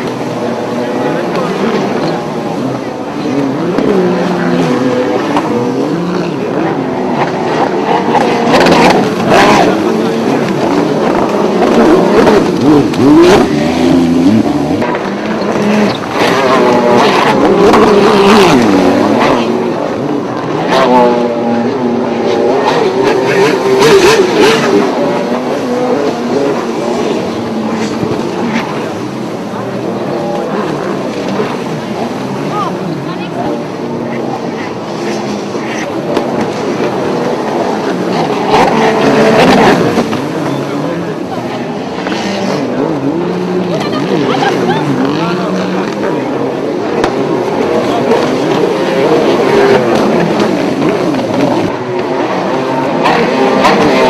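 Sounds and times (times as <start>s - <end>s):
jet ski engines revving: 0.0s - 54.0s.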